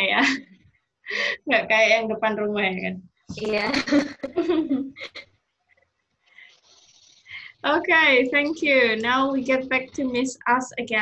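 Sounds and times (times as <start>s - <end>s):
woman laughing: 0.1s - 0.5s, 3.6s - 5.2s.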